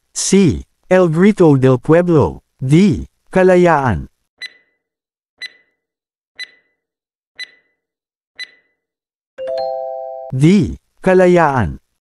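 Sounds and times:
high ticking beeps: 4.4 - 4.7, 5.4 - 5.8, 6.4 - 6.8, 7.4 - 7.8, 8.4 - 8.7.

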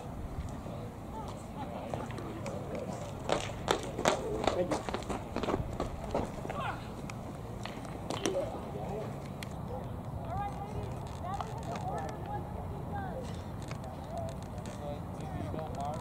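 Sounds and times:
voices talking: 0.0 - 16.0.

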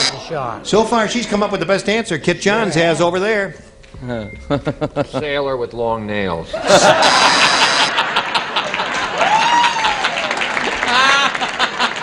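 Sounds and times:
audience laughing: 6.5 - 12.0
audience clapping: 7.9 - 12.0.

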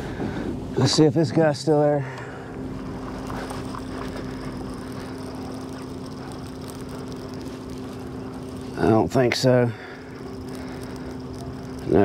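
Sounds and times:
low motor hum: 0.0 - 12.0
faint ticks: 3.2 - 12.0.

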